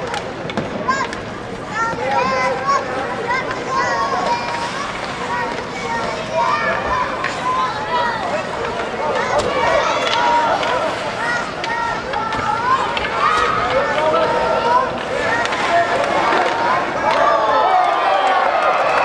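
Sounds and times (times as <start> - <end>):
hockey sticks and puck clacking: 0.0 - 18.0
many voices shouting: 1.7 - 19.0.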